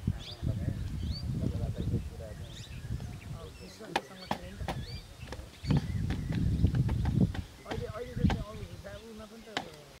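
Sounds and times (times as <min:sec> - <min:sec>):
sharp knocks: 0:03.9 - 0:08.5.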